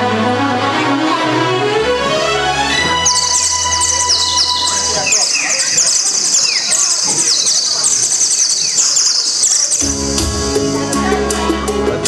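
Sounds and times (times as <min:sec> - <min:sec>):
instrumental music with bass: 0:00.0 - 0:05.2, 0:09.8 - 0:12.0
rapid high bird chirping: 0:02.7 - 0:10.8.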